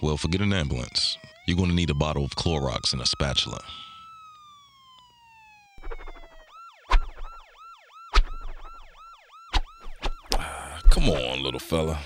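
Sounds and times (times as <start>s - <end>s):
yelping siren: 0.0s - 12.0s
heavy thumps: 9.6s - 11.3s.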